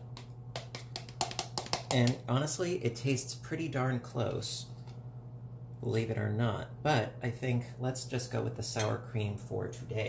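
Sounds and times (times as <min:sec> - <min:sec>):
spoon tapping and clicking: 0:00.1 - 0:02.2.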